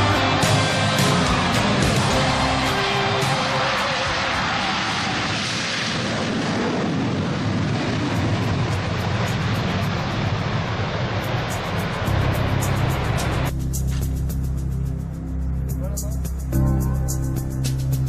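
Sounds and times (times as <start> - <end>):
background music: 0.0 - 4.6, 11.5 - 18.0
jet engine roar: 0.0 - 14.1.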